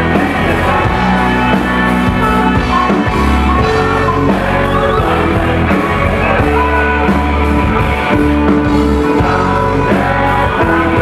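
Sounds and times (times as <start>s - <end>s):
live rock band playing: 0.0s - 11.0s
people singing into microphones: 0.0s - 11.0s.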